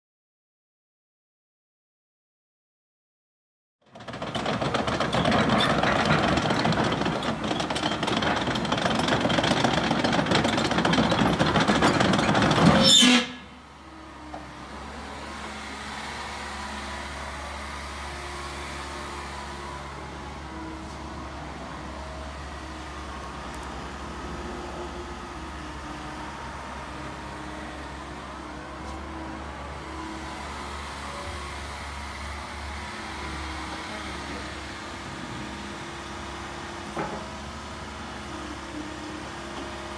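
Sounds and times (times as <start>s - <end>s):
excavator diesel engine running: 3.8s - 39.9s.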